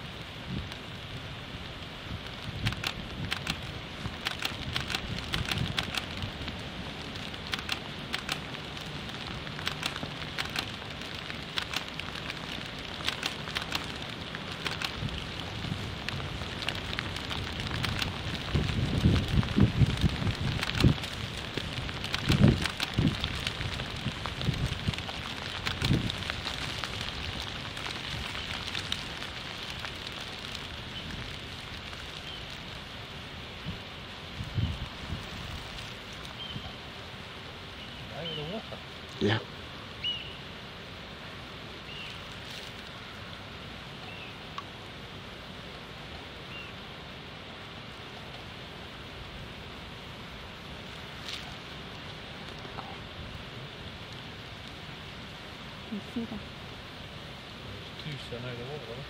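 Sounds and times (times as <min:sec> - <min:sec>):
beavers gnawing branches: 0:02.1 - 0:37.6, 0:41.8 - 0:43.8, 0:48.0 - 0:56.9.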